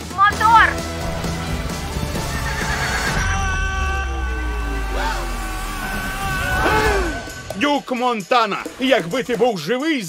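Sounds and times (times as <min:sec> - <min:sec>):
horse whinnying: 0:02.0 - 0:03.9.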